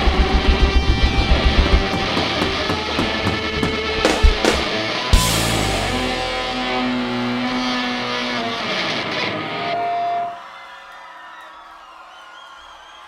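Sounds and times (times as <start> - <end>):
distorted electric guitar feedback: 0.0 - 10.4
whistles: 11.3 - 13.0.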